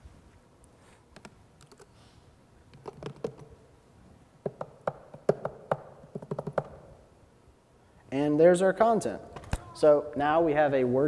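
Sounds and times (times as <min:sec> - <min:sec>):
laptop keyboard typing: 0:01.2 - 0:01.9, 0:02.7 - 0:03.5, 0:04.4 - 0:06.8.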